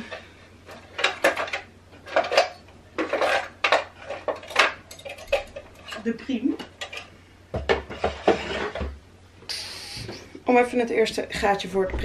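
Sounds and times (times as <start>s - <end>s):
tools clattering and clinking: 0.7s - 7.1s.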